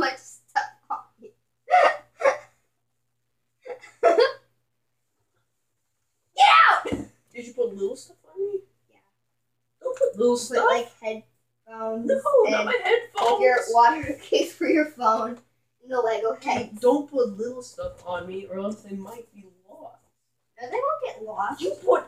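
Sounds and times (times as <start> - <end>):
child talking: 0.0 - 1.3, 9.8 - 19.2, 20.6 - 22.0.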